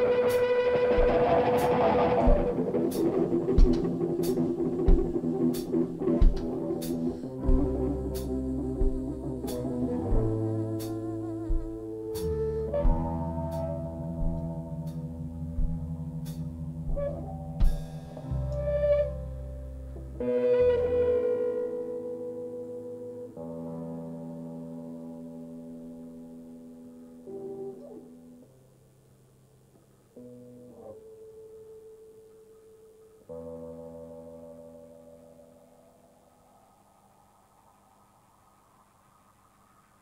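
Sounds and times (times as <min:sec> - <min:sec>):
drum and cymbal hits: 0:00.3 - 0:11.9, 0:14.2 - 0:18.4.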